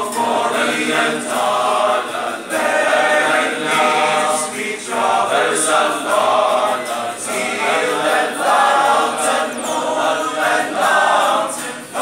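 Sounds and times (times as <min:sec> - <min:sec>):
male choir singing unaccompanied: 0:00.0 - 0:12.0.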